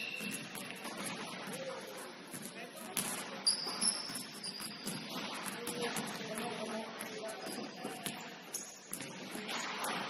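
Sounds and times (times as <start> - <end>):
sneaker squeak on hardwood: 0.0 - 0.5, 3.4 - 5.1
basketball bounce: 0.0 - 1.6, 2.3 - 10.0.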